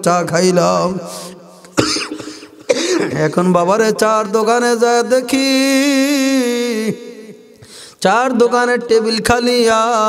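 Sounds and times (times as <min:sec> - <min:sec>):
man coughing: 0:01.6 - 0:03.4
throat clearing: 0:01.7 - 0:03.2.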